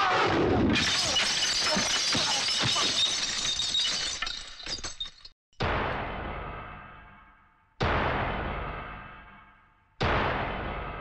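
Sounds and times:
glass shattering: 0.7s - 5.4s
glass pieces tinkling: 0.8s - 5.4s.

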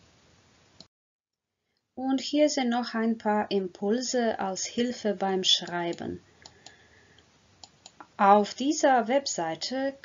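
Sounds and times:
person speaking: 2.0s - 6.2s, 7.9s - 10.0s
computer mouse clicks: 5.6s - 8.2s.

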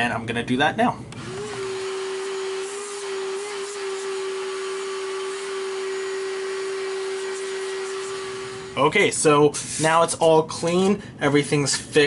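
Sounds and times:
vacuum cleaner running: 1.1s - 9.0s.

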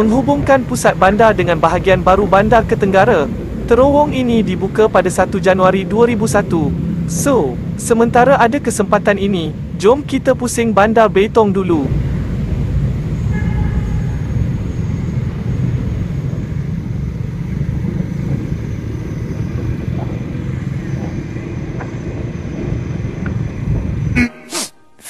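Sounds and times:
road rumble: 0.0s - 24.3s
wind noise on microphone: 11.8s - 24.2s.

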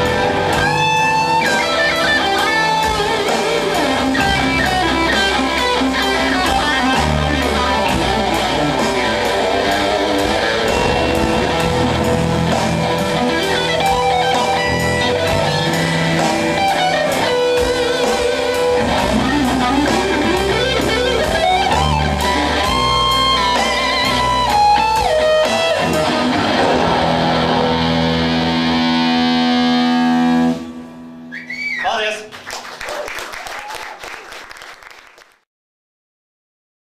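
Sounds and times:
electric guitar lead melody: 0.0s - 31.4s
rock band playing: 0.0s - 31.8s.

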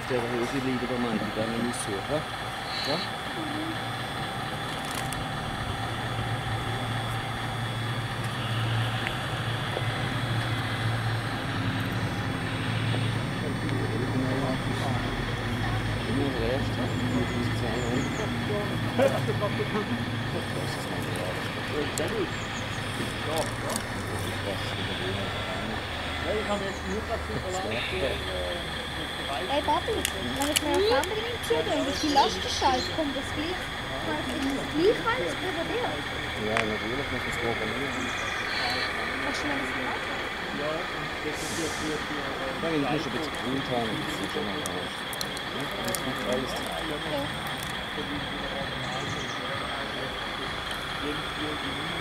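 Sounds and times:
voices in the background: 0.0s - 5.1s, 8.4s - 52.0s
model excavator hydraulic hum: 0.0s - 52.0s.

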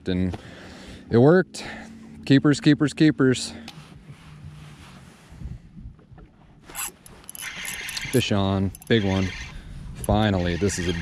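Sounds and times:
jacket and gear rubbing: 3.6s - 5.4s, 6.6s - 9.0s
scratchy rustle: 3.8s - 5.4s.

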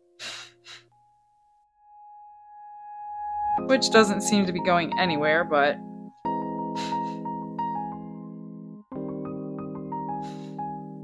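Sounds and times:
puffs of breath blown: 0.2s - 0.9s, 6.7s - 7.3s, 10.2s - 10.7s.

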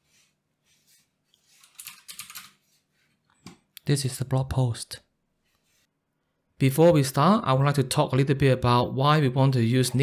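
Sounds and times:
keyboard typing: 1.6s - 2.6s.

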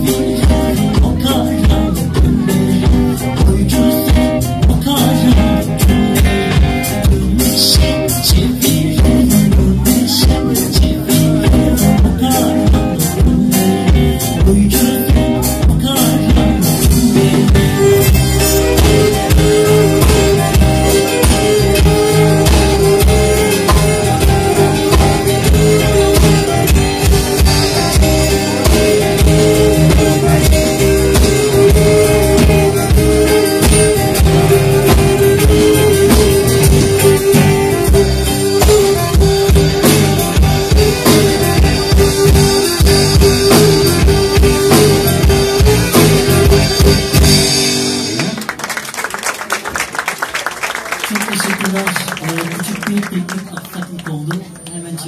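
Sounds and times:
drum kit beat: 0.0s - 48.8s
bass guitar: 0.0s - 48.9s
electric guitars: 0.0s - 54.7s
live rock band playing: 0.0s - 55.0s
bowed fiddle notes: 17.5s - 47.6s
audience applause: 48.1s - 54.7s.

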